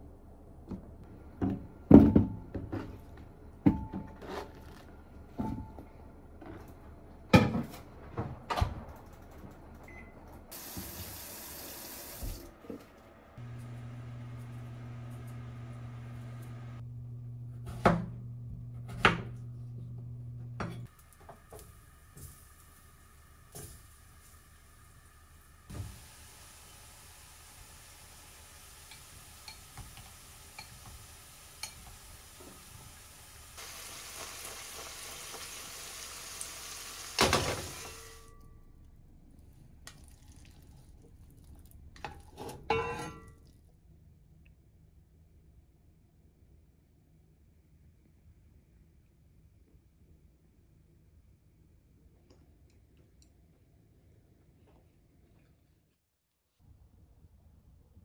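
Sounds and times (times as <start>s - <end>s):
running water hiss: 10.5s - 12.5s, 20.9s - 38.2s
microwave oven humming: 12.5s - 38.9s
food frying in oil: 20.9s - 38.2s.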